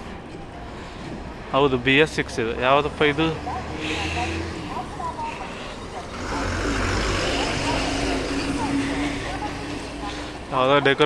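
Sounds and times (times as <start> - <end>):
bus diesel engine passing: 0.0 - 11.0.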